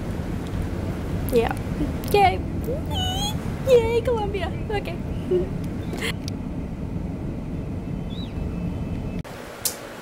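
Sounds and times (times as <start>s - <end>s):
car engine and road noise: 0.0s - 9.5s.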